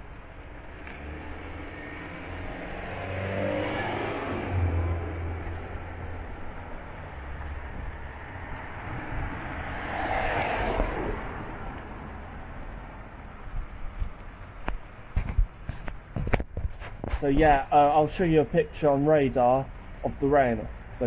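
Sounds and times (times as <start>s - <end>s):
cars passing on wet road: 0.0s - 15.0s.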